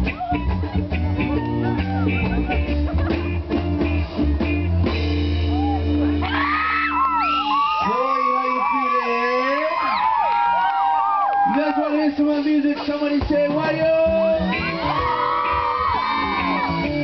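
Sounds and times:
crowd whooping and cheering: 0.0s - 3.2s, 4.2s - 12.5s, 14.0s - 17.0s
reggae band playing: 0.0s - 17.0s.

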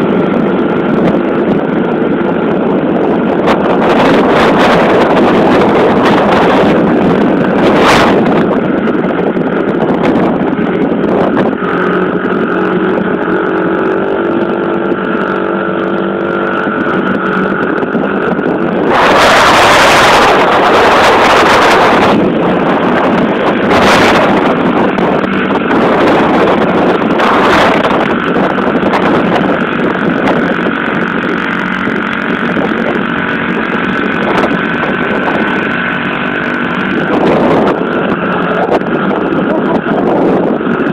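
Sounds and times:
wind buffeting on microphone: 0.0s - 40.9s.

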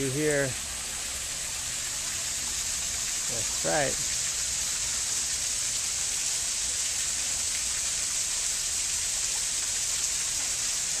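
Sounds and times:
waterfall pouring onto rocks: 0.0s - 11.0s.

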